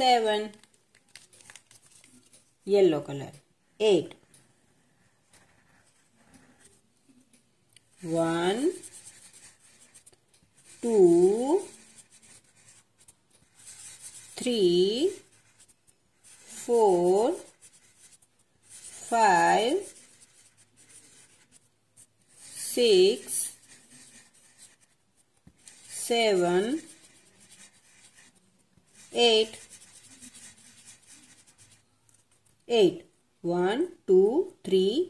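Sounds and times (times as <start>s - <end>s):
person speaking: 0.0s - 4.3s, 7.8s - 21.7s, 22.3s - 25.0s, 25.6s - 31.7s
pen scribbling on paper: 4.9s - 6.7s, 7.9s - 31.8s.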